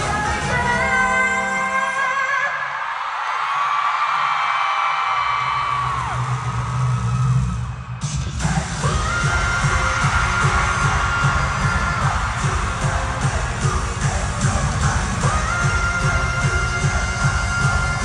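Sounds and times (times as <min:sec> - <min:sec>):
pop concert music: 0:00.0 - 0:18.0
heavy bass beat: 0:06.0 - 0:18.0.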